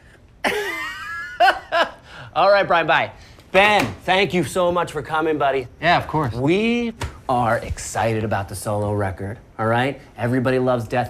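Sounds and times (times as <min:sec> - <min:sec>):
man laughing loudly: 0:00.4 - 0:02.2.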